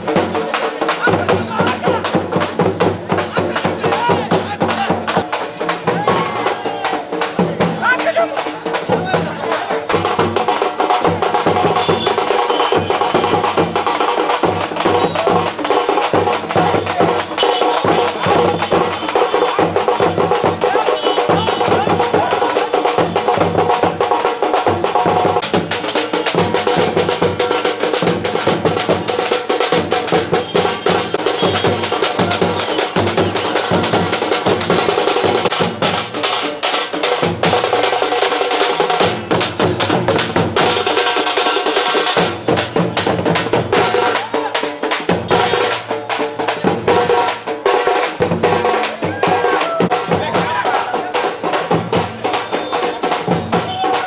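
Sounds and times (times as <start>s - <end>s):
procession drums beating fast: 0.0s - 54.0s.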